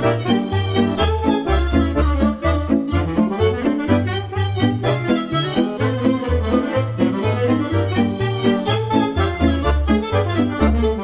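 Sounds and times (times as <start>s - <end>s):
folk band playing: 0.0s - 11.0s.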